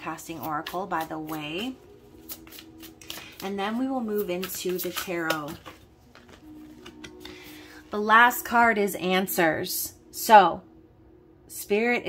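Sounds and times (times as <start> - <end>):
soft background music: 0.0 - 12.0
cards clicking and rustling: 2.2 - 3.4, 4.1 - 7.3.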